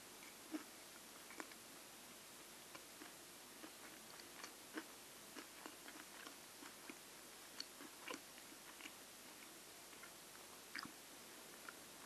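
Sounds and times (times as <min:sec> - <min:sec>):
wet chewing and mouth smacks: 0:00.2 - 0:01.6, 0:02.7 - 0:11.0.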